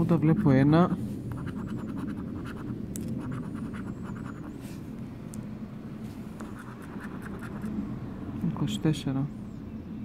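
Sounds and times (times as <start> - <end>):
coin scratching card: 1.4 - 4.5, 6.4 - 7.7.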